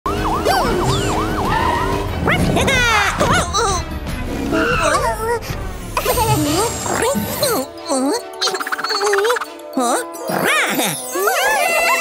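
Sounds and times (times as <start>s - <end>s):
cartoon police siren yelp: 0.1s - 2.1s.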